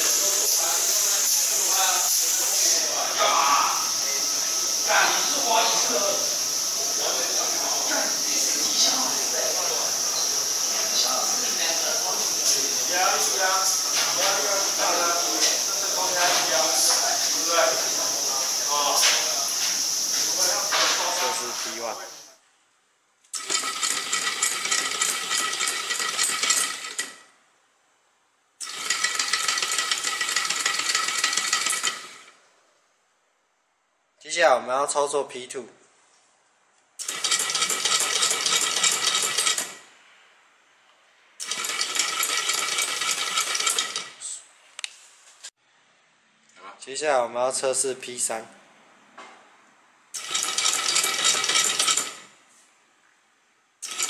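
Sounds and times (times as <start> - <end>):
motor driving belt clicking and whining: 23.4 - 27.2, 28.6 - 32.3, 37.0 - 39.8, 41.4 - 44.1, 50.2 - 52.3
toothed belt rattling: 50.2 - 52.2.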